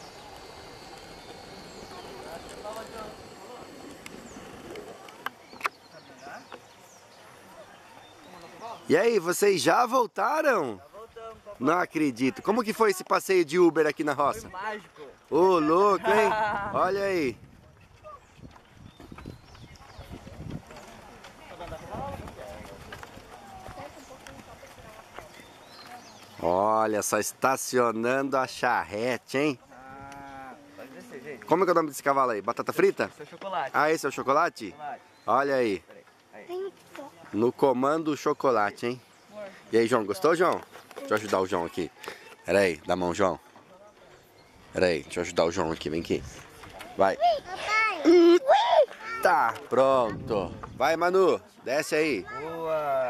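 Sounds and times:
hooves clip-clopping: 0.0 - 8.8, 17.0 - 27.1
faint voices: 0.0 - 8.9
horse hooves clip-clopping on dirt: 17.4 - 26.7.

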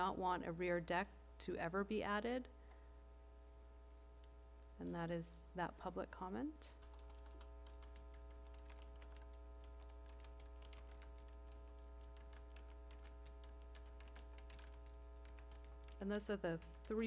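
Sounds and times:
low electrical hum: 0.0 - 17.0
keyboard and mouse clicking: 6.8 - 17.0.

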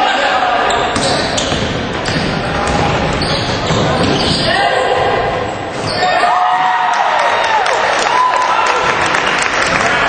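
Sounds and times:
crowd noise and voices: 0.0 - 10.0
basketball bouncing on court: 0.8 - 4.5.

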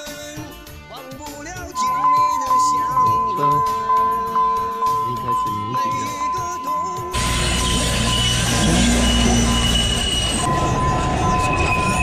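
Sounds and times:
song playing: 0.0 - 7.6
level crossing warning bell: 1.7 - 12.0.

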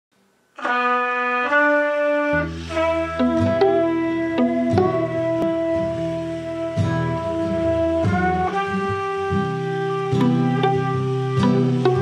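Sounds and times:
acoustic guitar notes: 0.6 - 12.0
trumpet long held notes: 0.6 - 12.0.

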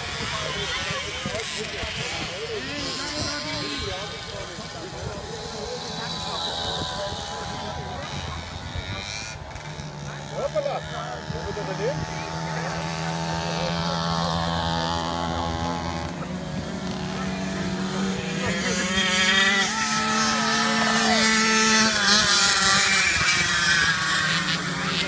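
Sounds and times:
moped engines revving: 0.0 - 25.0.

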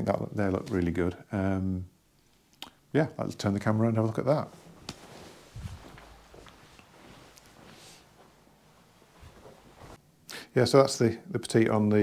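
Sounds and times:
light footsteps: 4.5 - 10.0.

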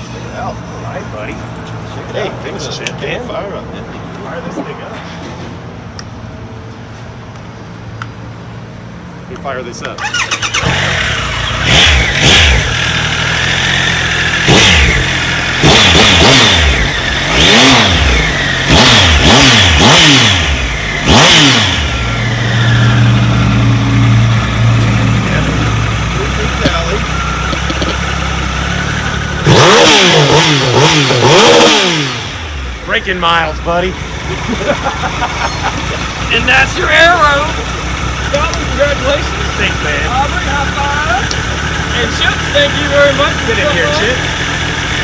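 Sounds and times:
motorcycle engine revving: 10.0 - 45.0.

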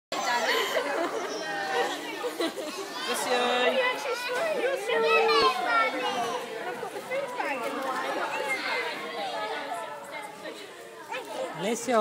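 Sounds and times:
chatter of children and adults: 0.1 - 12.0.

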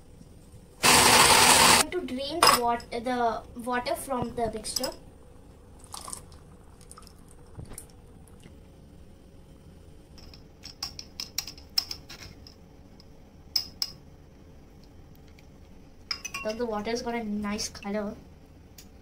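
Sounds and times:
metal spoon clinking on strainer: 16.1 - 16.6.

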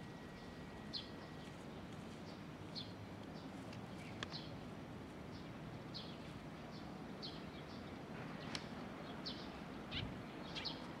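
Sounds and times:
small birds chirping: 0.0 - 11.0.

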